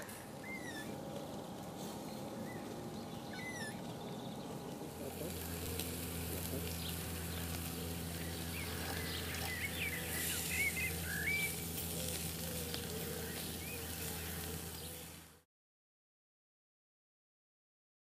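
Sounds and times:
low steady hum: 0.0s - 15.4s
small birds chirping: 0.0s - 15.4s
outdoor hiss: 0.0s - 15.5s.

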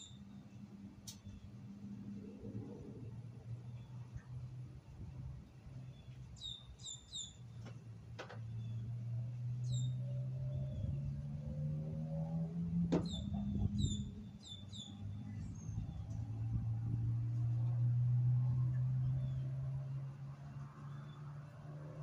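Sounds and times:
songbirds chirping: 0.0s - 22.0s.

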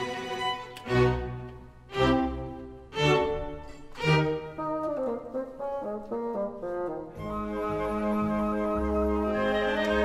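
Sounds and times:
orchestral music with brass: 0.0s - 10.0s.

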